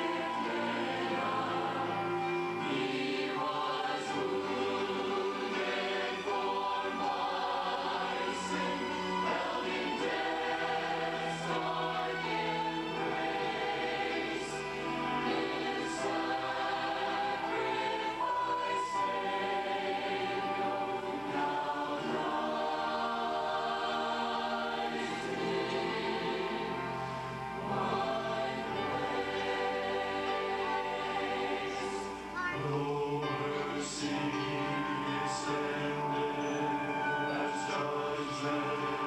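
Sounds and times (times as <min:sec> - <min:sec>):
church choir singing: 0:00.0 - 0:39.0.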